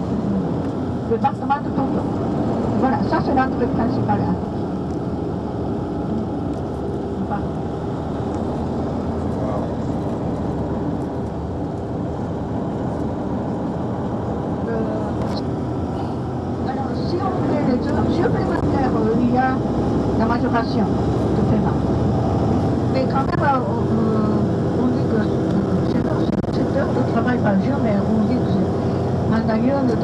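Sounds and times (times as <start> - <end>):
coach engine and road rumble: 0.0 - 30.0.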